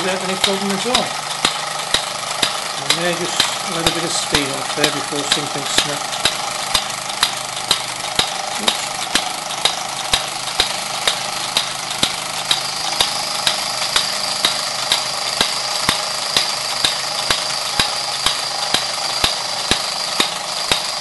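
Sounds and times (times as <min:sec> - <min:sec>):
toy steam engine hissing: 0:00.0 - 0:21.0
mechanical clicking: 0:00.1 - 0:21.0.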